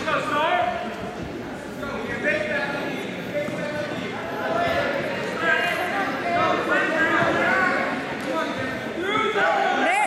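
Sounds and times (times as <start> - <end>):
voices shouting in a gym: 1.9 - 10.0.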